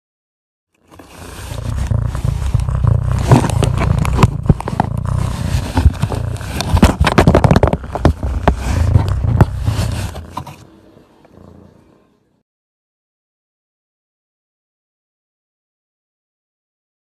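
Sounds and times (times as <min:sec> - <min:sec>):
cat purring: 0:00.8 - 0:12.2
fur rubbing against phone: 0:00.9 - 0:10.6.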